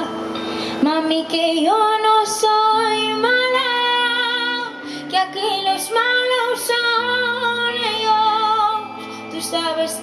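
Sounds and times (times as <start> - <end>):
woman singing into microphone: 0.0 - 10.0.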